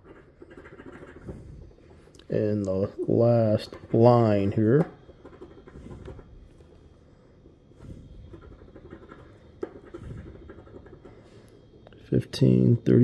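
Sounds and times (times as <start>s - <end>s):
coin scraping scratch card: 0.0s - 1.3s.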